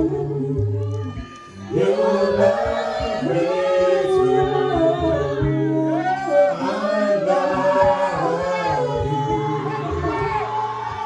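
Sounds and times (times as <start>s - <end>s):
group singing worship song: 0.0s - 11.0s.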